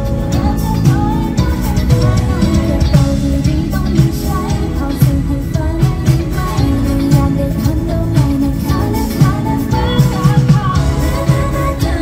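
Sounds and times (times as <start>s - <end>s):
female vocals singing: 0.0s - 12.0s
pop backing track with beat: 0.0s - 12.0s.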